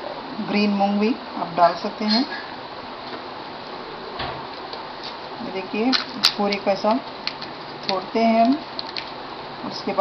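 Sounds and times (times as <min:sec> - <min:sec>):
steady background hiss: 0:00.0 - 0:10.0.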